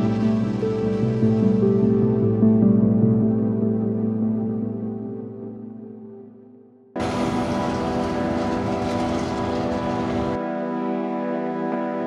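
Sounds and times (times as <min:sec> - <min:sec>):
truck passing at speed: 0:07.0 - 0:10.4.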